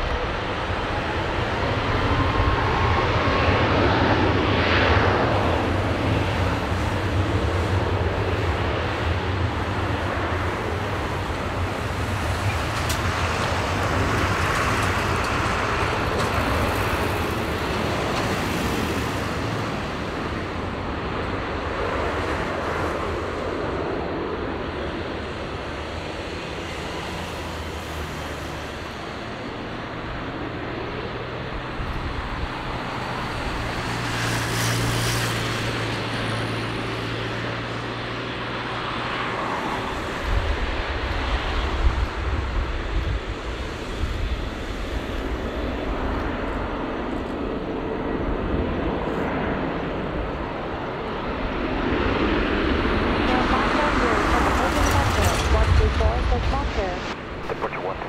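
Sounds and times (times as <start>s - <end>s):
jet engine roar: 0.0s - 58.0s
deep rumble: 52.8s - 58.0s.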